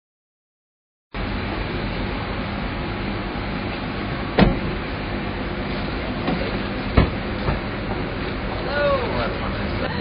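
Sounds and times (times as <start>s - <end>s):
outdoor background rush: 1.1s - 10.0s
car door thuds: 4.3s - 4.8s, 6.2s - 8.0s.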